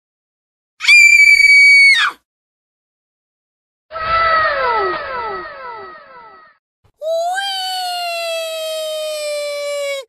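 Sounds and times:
high-pitched scream: 0:00.8 - 0:02.2, 0:03.9 - 0:10.0
echoing downward sliding tone: 0:04.0 - 0:06.5.

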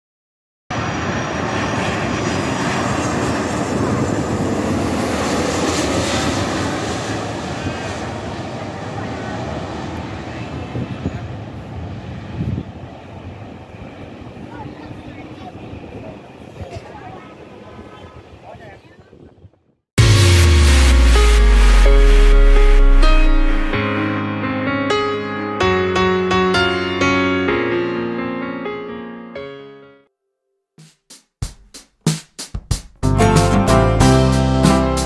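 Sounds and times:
jet engines roaring overhead: 0:00.7 - 0:18.7.

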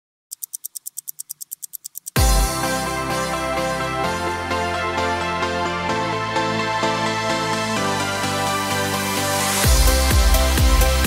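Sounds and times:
rapid ticking: 0:00.3 - 0:02.3.

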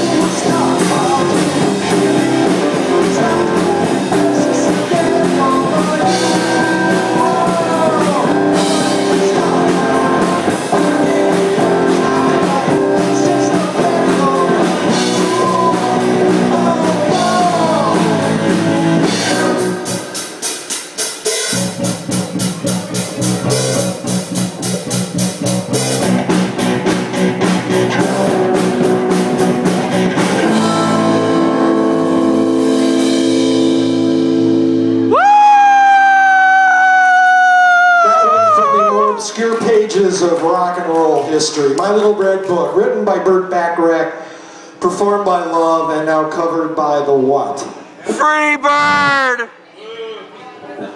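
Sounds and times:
person singing: 0:00.0 - 0:20.2, 0:30.4 - 0:31.7, 0:48.1 - 0:49.6
bass guitar: 0:00.0 - 0:20.3, 0:21.2 - 0:35.9, 0:48.1 - 0:49.5
electric guitars: 0:00.0 - 0:20.5, 0:21.5 - 0:35.2
drum kit: 0:00.0 - 0:36.5.

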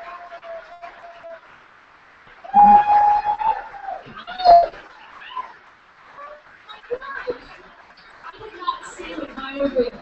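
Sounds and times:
audience whooping: 0:02.4 - 0:05.6.

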